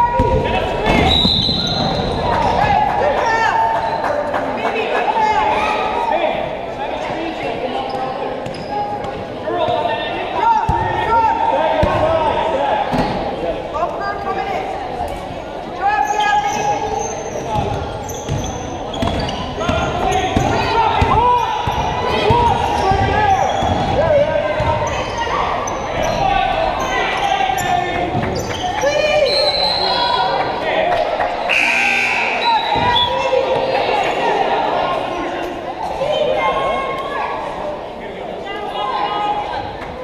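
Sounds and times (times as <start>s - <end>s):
voices calling out in a hall: 0.0s - 40.0s.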